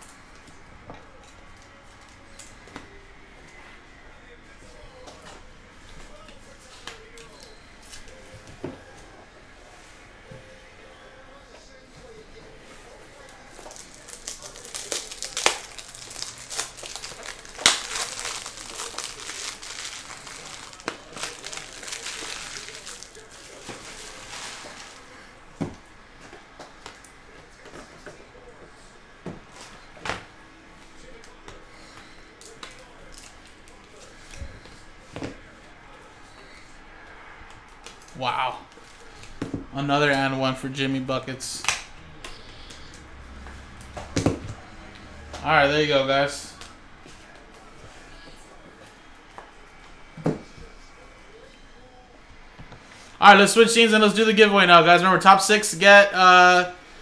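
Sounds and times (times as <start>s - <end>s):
plastic packaging crinkling: 13.2s - 25.2s.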